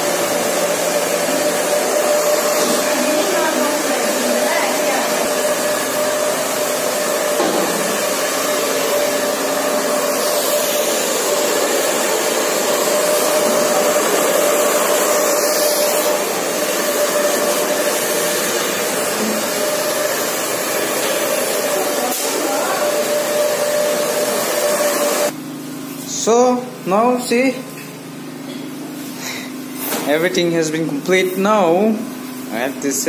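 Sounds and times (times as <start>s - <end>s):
hair dryer blowing: 0.0s - 25.4s, 29.1s - 33.0s.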